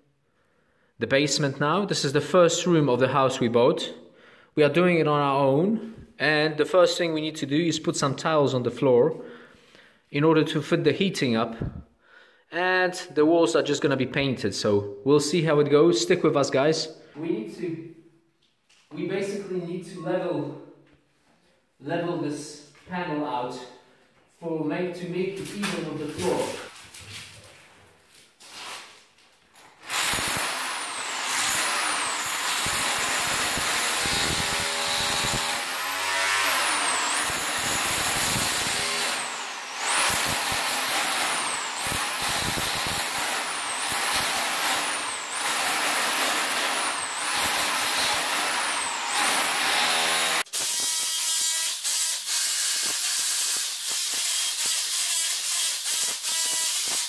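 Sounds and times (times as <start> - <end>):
rotary hammer chiselling concrete: 29.8 - 52.1, 52.8 - 57.0.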